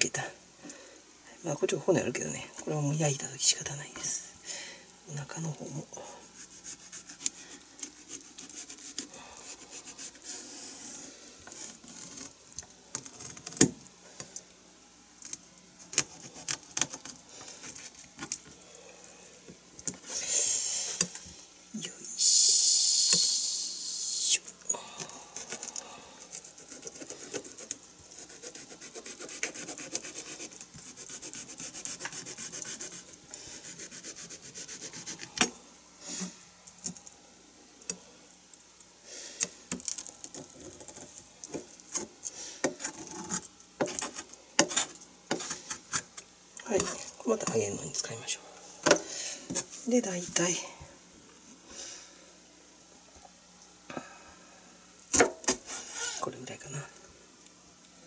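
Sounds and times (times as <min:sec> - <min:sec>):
knife scraping fish bones: 0:06.4 - 0:10.9, 0:15.8 - 0:18.4, 0:25.4 - 0:35.5, 0:41.9 - 0:46.2.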